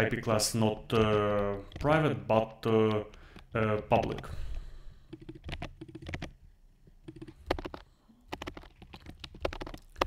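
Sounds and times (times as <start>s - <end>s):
typing on computer keyboard: 0.6s - 4.3s, 5.0s - 6.4s, 7.0s - 10.0s.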